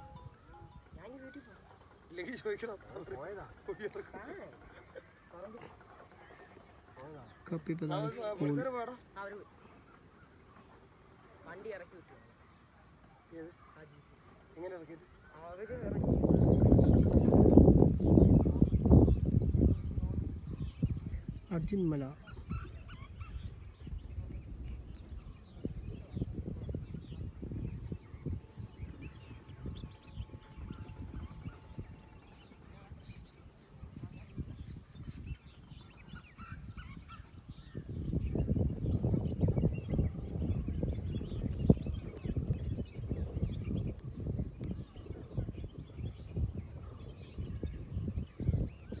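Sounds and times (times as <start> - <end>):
wind buffeting microphone: 13.8 - 49.0.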